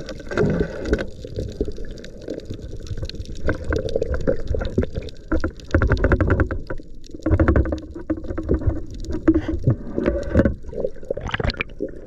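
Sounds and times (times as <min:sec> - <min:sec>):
crackling clicks: 0:00.0 - 0:11.8
muffled underwater sloshing: 0:00.0 - 0:12.0.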